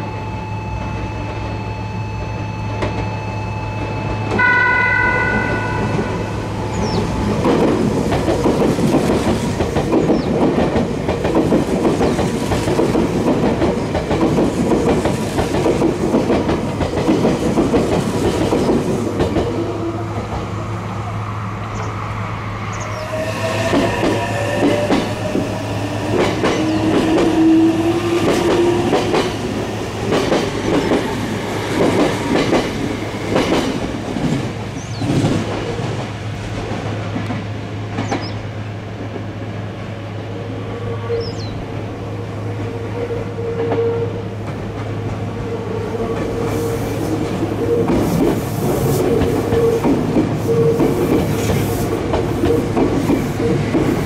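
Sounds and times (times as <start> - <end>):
train wheel squeal: 0.0 - 7.4, 22.6 - 29.5, 40.5 - 41.7, 42.4 - 54.0
train wheels clattering over rail joints: 6.8 - 19.6, 23.6 - 38.4, 47.1 - 54.0.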